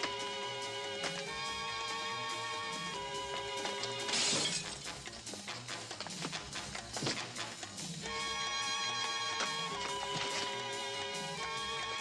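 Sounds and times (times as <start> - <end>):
music: 0.0 - 12.0
clinks of falling pieces: 3.6 - 7.3
shattering crash: 3.9 - 5.2.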